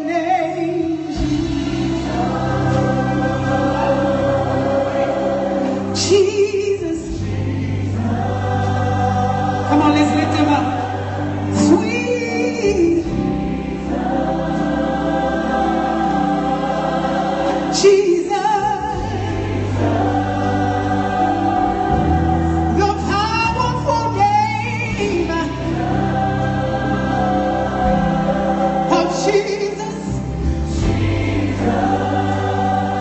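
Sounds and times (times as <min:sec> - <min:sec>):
backing singers: 0:00.0 - 0:33.0
woman singing into microphone: 0:05.8 - 0:08.1, 0:11.6 - 0:13.3, 0:17.7 - 0:20.0, 0:22.7 - 0:25.9.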